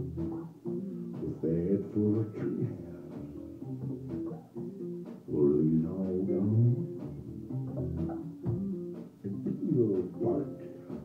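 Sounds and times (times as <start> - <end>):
electric bass notes: 0.0 - 11.0
electric guitar notes: 0.0 - 11.0.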